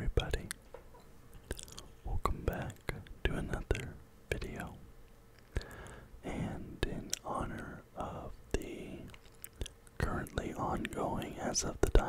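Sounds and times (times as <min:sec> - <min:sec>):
man whispering into microphone: 0:00.0 - 0:00.6, 0:01.5 - 0:04.8, 0:06.3 - 0:12.0.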